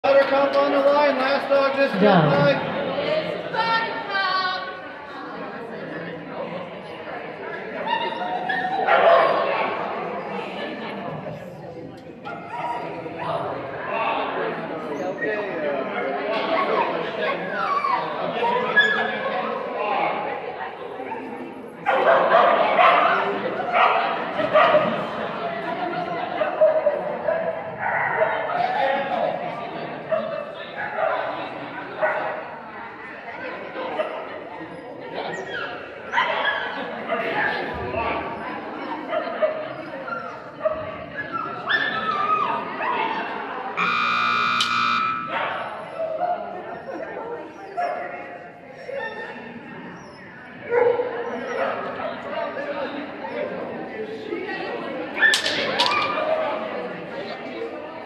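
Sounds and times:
background talk: 0.0 - 58.0
indistinct chatter of voices: 0.0 - 58.0.

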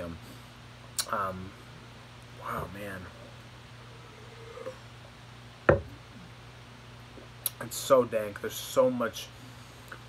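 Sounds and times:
steady low hum: 0.0 - 10.0
person drinking from glass: 4.0 - 4.8
glass knocking on table: 5.7 - 5.9.

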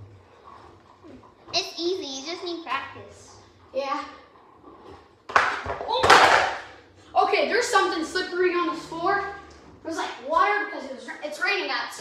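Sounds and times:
child talking: 1.1 - 4.4, 7.1 - 12.0.

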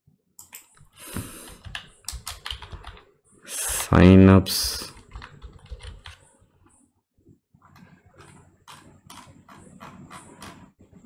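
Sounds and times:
computer keyboard typing: 1.4 - 3.0, 4.8 - 6.2, 7.8 - 10.7.

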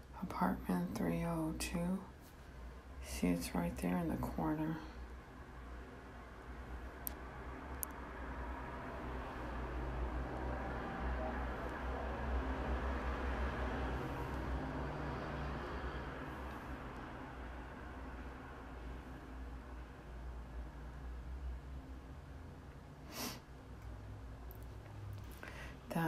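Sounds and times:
indoor hum and hiss: 0.0 - 26.0.

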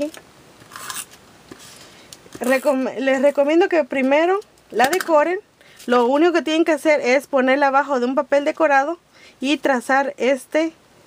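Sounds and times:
tape runner scraping on paper: 0.6 - 1.8.

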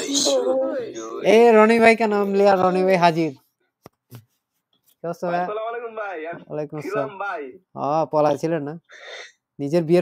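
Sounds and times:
man speaking: 0.0 - 3.5, 5.0 - 8.8.

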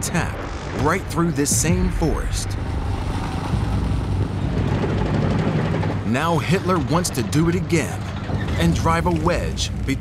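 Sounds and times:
tank engine rumble: 0.0 - 10.0
tank tracks clattering: 3.2 - 9.8.

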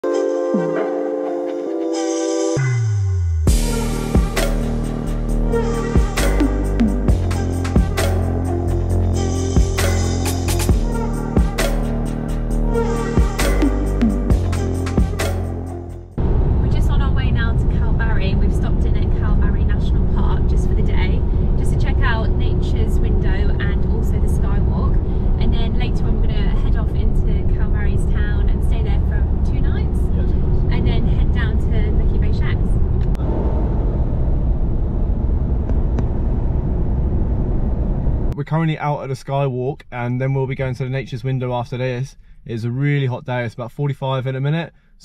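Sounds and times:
road and engine rumble: 3.5 - 38.8
woman talking: 16.6 - 32.8.

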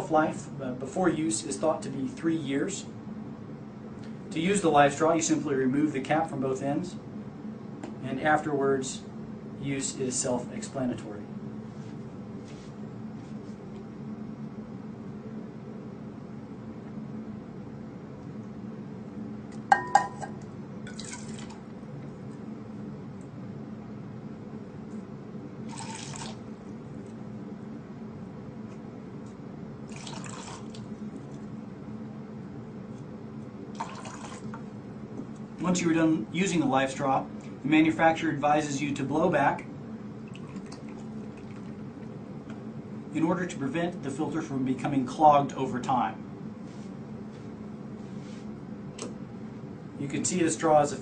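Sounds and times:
low steady hum: 0.0 - 51.0
clinks on a drinking glass: 19.7 - 20.3.

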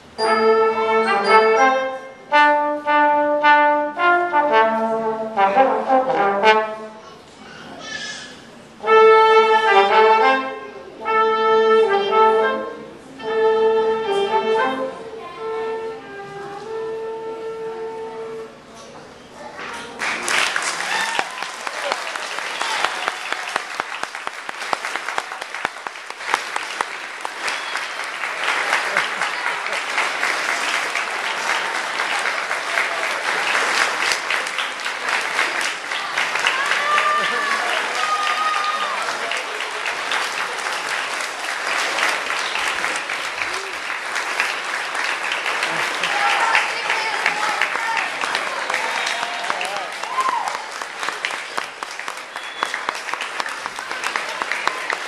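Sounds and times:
people clapping: 19.7 - 55.0.

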